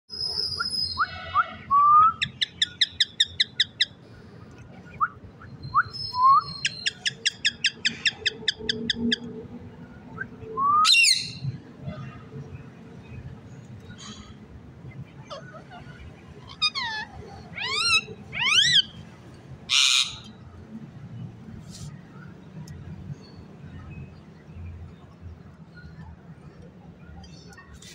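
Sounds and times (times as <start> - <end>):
parakeets calling rapidly: 15.3 - 19.0, 19.7 - 20.3
parakeet screeching: 16.4 - 19.0, 19.7 - 20.3.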